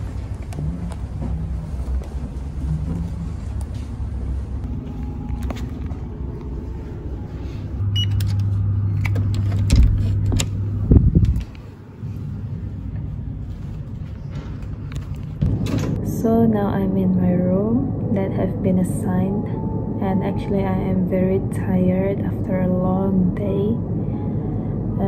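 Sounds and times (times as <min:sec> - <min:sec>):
door lock beep: 0:07.9 - 0:08.4
door thump: 0:15.4 - 0:16.0.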